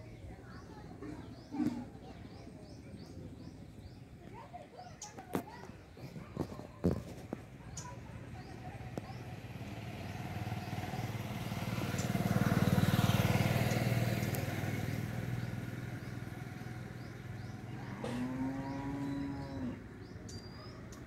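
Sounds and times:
vehicle engine passing: 0:07.9 - 0:20.2
cow mooing: 0:17.8 - 0:19.8.

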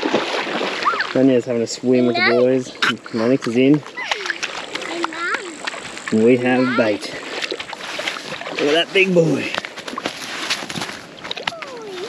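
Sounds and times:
cast net crackling rustle: 0:07.5 - 0:12.0.

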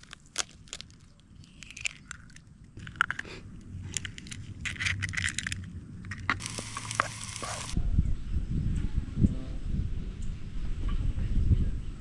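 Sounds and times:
eggshells cracking: 0:00.0 - 0:07.8.

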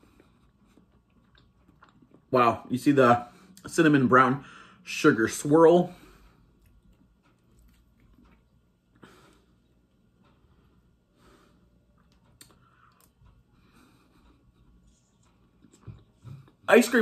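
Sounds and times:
faint mouth sounds eating: 0:00.0 - 0:02.4, 0:06.3 - 0:10.6, 0:11.8 - 0:16.7.

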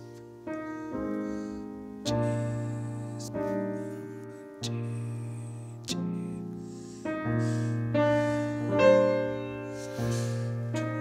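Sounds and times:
solo piano jazz chords: 0:00.0 - 0:11.0.

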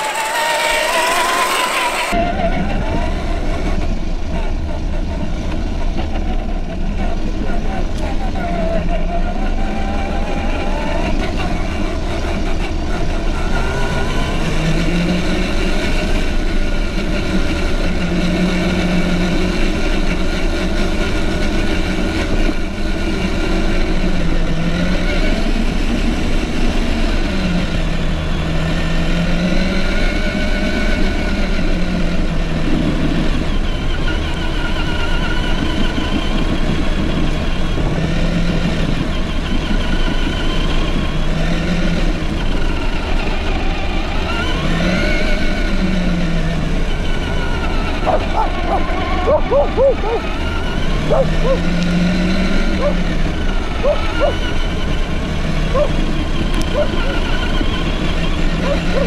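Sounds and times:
electric motor whining: 0:00.0 - 0:04.4, 0:06.0 - 0:59.0
tyres rumbling on gravel: 0:32.1 - 0:59.0.

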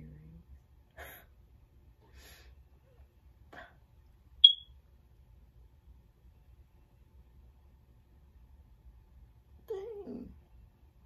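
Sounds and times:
high-pitched electronic beep: 0:04.4 - 0:04.7.

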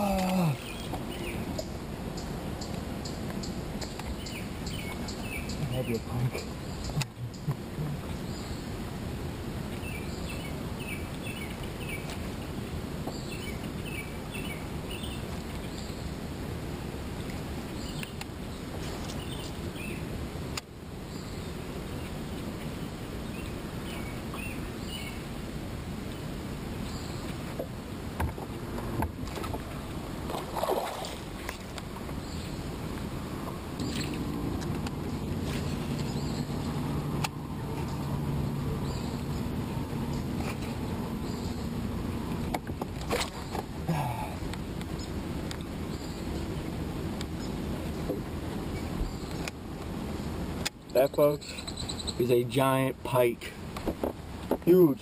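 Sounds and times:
boat on calm water: 0:00.0 - 0:55.0.

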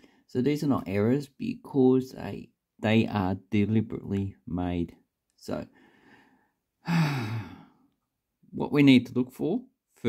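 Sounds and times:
man sighing: 0:06.8 - 0:07.8.

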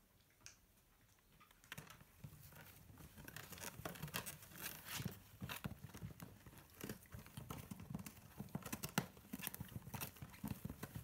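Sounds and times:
puppies scratching cardboard: 0:02.2 - 0:11.0.

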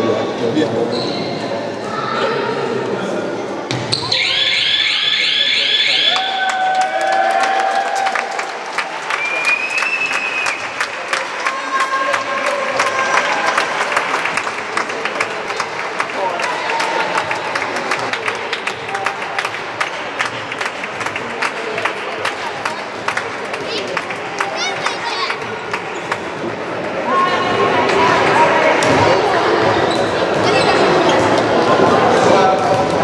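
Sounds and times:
sneakers squeaking on wooden floor: 0:00.9 - 0:01.5, 0:03.7 - 0:04.3, 0:29.6 - 0:31.4
children's voices echoing: 0:01.7 - 0:03.3, 0:22.4 - 0:33.0
ball bouncing on court: 0:03.7 - 0:04.2.

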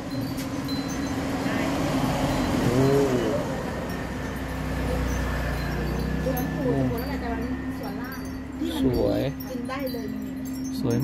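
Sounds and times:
road vehicle passing: 0:00.0 - 0:11.0
people talking: 0:06.2 - 0:11.0.

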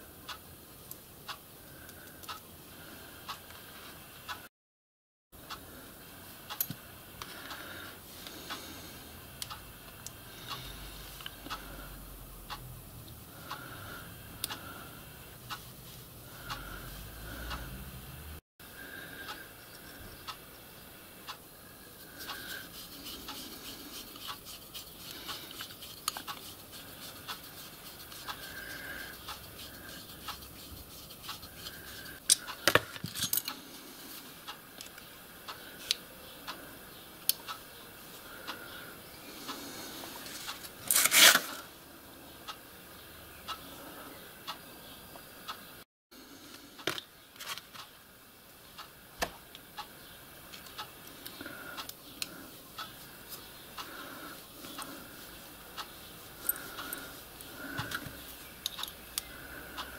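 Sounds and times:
metal parts clicking and clinking: 0:32.3 - 0:33.6.

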